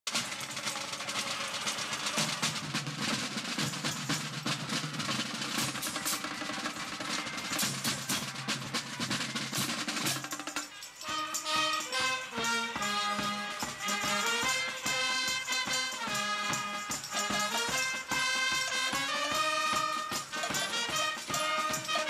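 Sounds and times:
field drums playing snare rolls: 0:00.1 - 0:22.0
low sustained brass notes: 0:11.0 - 0:22.0.

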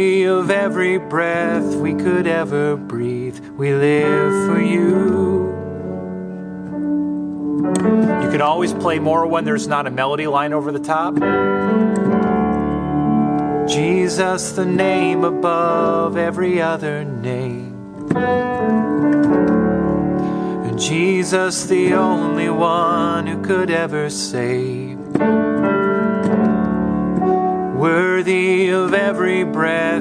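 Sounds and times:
keyboard piano chord: 0:00.0 - 0:30.0.

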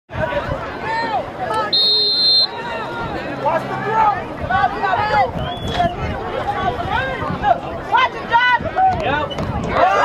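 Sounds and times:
spectators chattering: 0:00.1 - 0:10.0
referee's whistle blast: 0:01.7 - 0:02.6.

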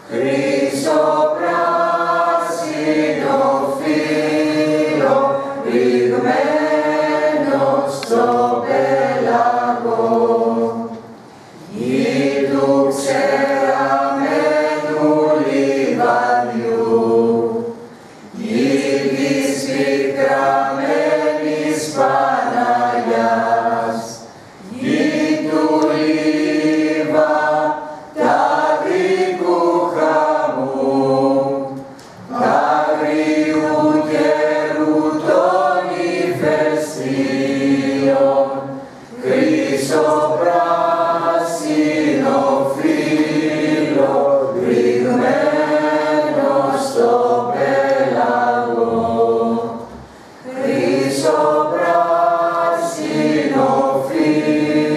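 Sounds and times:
mixed choir singing unaccompanied: 0:00.0 - 0:54.9.

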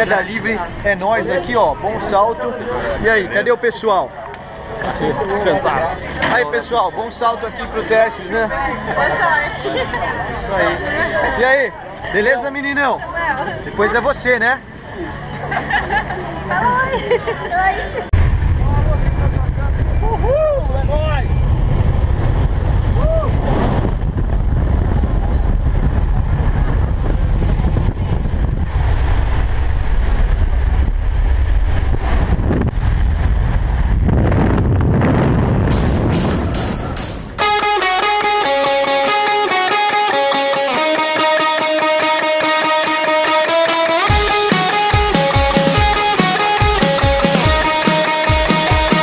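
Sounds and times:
wind inside cabin: 0:18.1 - 0:37.0
aircraft engine roar: 0:18.1 - 0:49.0
rock music with electric guitar: 0:35.7 - 0:49.0.

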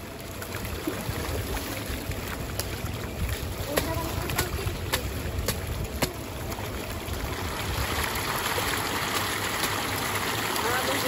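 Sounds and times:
water splashing and churning: 0:00.0 - 0:11.0
sharp water slaps: 0:00.9 - 0:06.8, 0:08.0 - 0:11.0.

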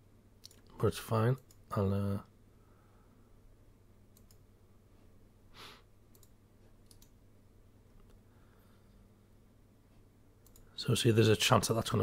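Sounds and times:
computer mouse clicks: 0:00.4 - 0:00.8, 0:04.1 - 0:04.4, 0:06.1 - 0:07.2, 0:10.4 - 0:10.7
soft breath: 0:02.5 - 0:03.4, 0:04.9 - 0:05.9, 0:08.2 - 0:09.2.

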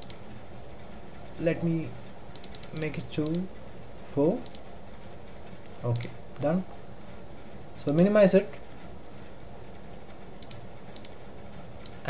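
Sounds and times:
low room noise: 0:00.0 - 0:12.0
mouse and keyboard clicks: 0:10.4 - 0:11.2.

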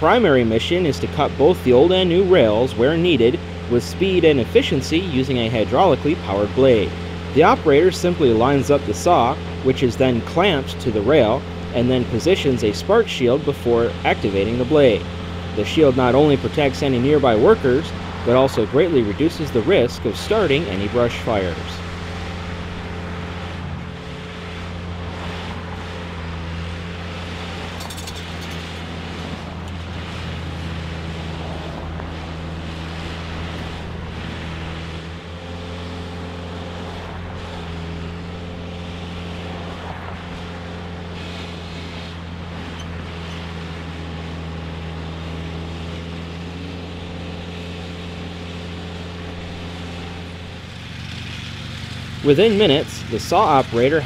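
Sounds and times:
diesel engine running steadily: 0:00.0 - 0:54.0.

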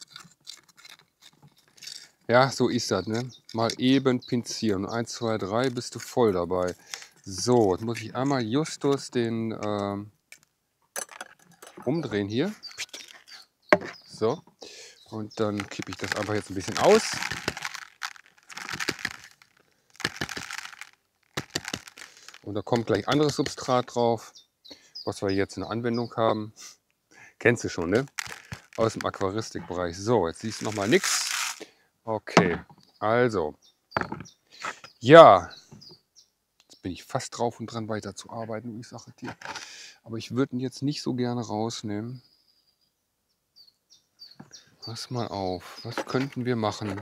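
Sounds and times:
pointed tool scraping gritty soil: 0:00.0 - 0:02.2, 0:15.2 - 0:23.9, 0:27.8 - 0:29.8, 0:30.4 - 0:31.6, 0:45.8 - 0:47.0
gravelly substrate clattering into tub: 0:15.4 - 0:19.4, 0:27.8 - 0:29.6, 0:30.4 - 0:31.4, 0:45.9 - 0:47.0.

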